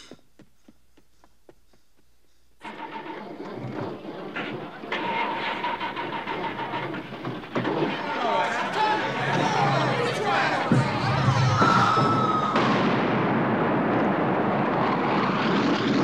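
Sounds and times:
people shouting: 0:04.8 - 0:13.1.

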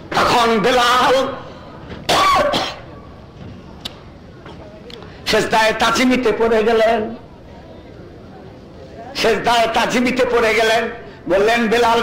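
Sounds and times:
man coughing: 0:02.1 - 0:02.9
small click: 0:03.8 - 0:04.0.

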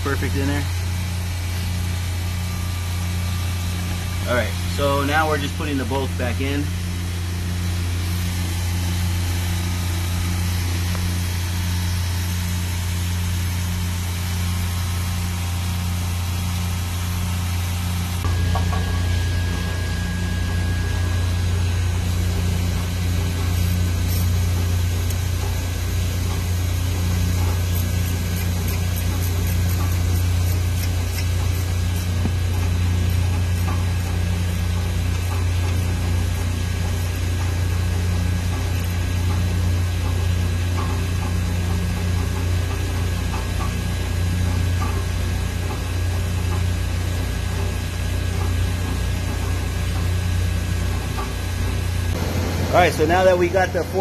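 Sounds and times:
low machinery hum: 0:00.0 - 0:54.0
thin high whine: 0:18.0 - 0:24.8.

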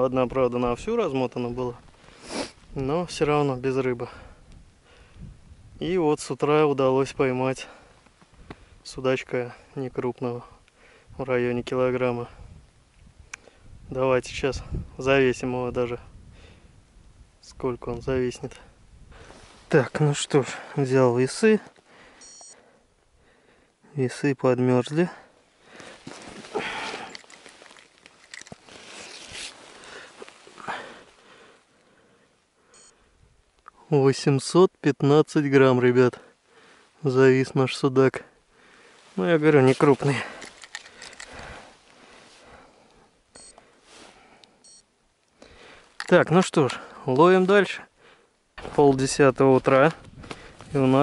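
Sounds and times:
scale beep: 0:22.2 - 0:22.6, 0:32.7 - 0:33.0, 0:43.4 - 0:43.6, 0:44.6 - 0:44.9
short high electronic beeps: 0:22.2 - 0:22.6
rustling handling noise: 0:25.5 - 0:31.2, 0:38.9 - 0:42.5.

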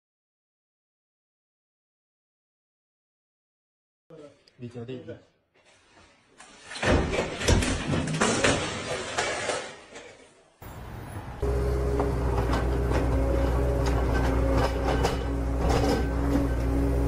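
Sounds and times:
sheet clattering on wooden pallets: 0:06.5 - 0:10.2.

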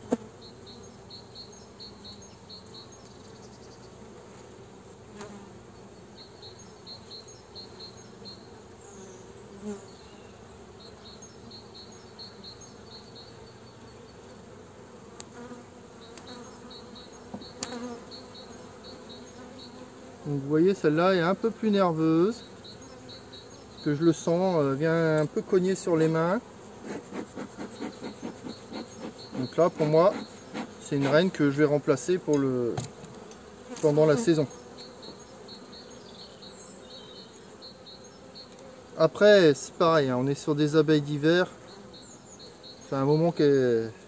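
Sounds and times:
honeybees buzzing: 0:00.0 - 0:44.0
hive tool and wooden frames clicking: 0:15.1 - 0:19.8, 0:25.0 - 0:26.0, 0:26.7 - 0:31.6, 0:32.2 - 0:36.0, 0:37.8 - 0:38.8.

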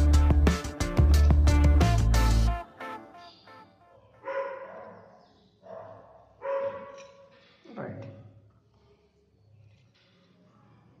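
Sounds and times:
faint dog barking: 0:03.9 - 0:07.3.

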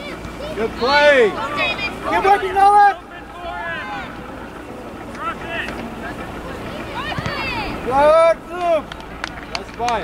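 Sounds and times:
distant voices shouting: 0:00.0 - 0:10.0.

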